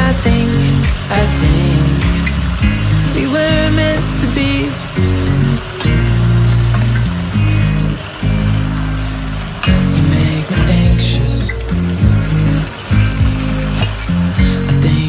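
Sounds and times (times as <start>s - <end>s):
pop love song: 0.0s - 6.9s, 9.6s - 15.0s.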